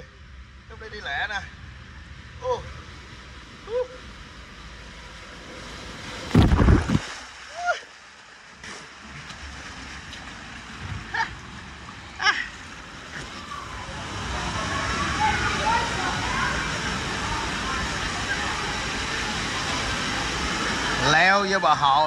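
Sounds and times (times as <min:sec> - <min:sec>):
water rushing down a slide: 0:02.6 - 0:22.0
water splashing into pool: 0:04.9 - 0:21.7.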